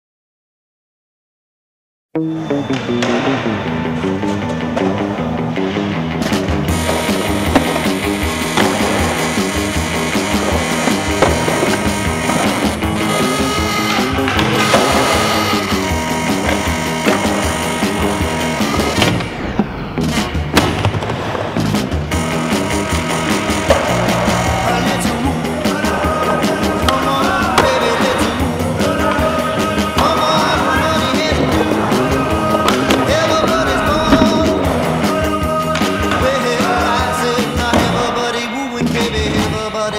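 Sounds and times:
loud background music: 2.2 - 39.9
skateboard wheels rolling on concrete: 2.9 - 39.9
skateboard clacks: 6.2 - 39.5.

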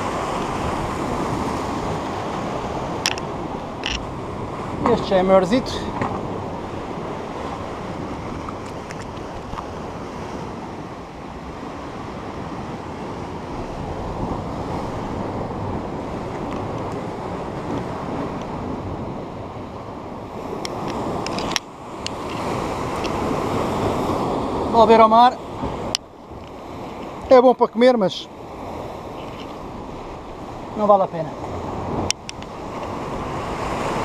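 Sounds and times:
sea surf on rocky shore: 0.0 - 34.0.

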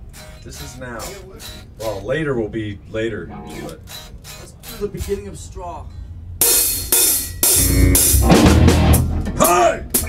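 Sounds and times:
cymbal crashes: 6.4 - 9.3.

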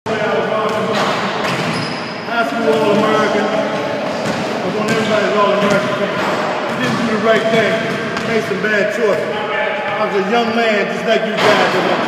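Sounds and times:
people talking: 0.1 - 1.7, 2.3 - 12.0.

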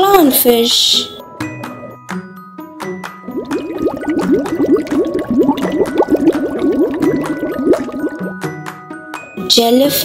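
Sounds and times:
cartoon bubbling bloops: 3.3 - 8.4.

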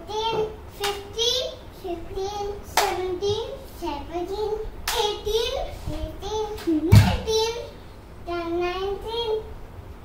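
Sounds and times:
child chanting: 0.0 - 9.6
sharp hand clap: 0.8 - 1.1, 2.8 - 3.0, 4.9 - 5.1.

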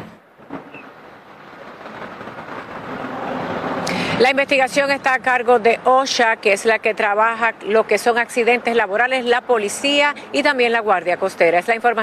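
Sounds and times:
road traffic hiss and rumble: 0.0 - 12.0.

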